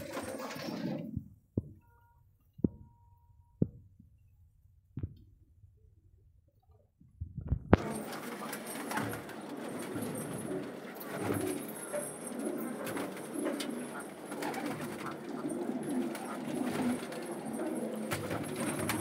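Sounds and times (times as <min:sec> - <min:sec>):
pigeons cooing: 0:08.4 - 0:19.0.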